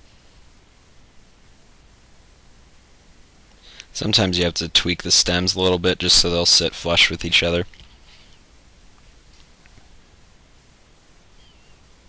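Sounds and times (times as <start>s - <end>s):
room tone hiss: 0.0s - 12.0s
faint high chirp: 11.3s - 12.0s.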